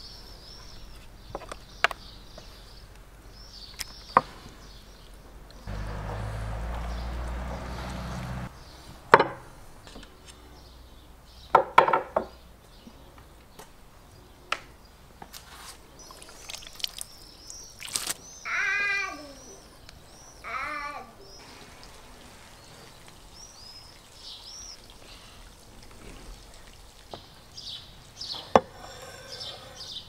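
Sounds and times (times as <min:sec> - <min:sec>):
low hum: 0:05.7 - 0:08.6.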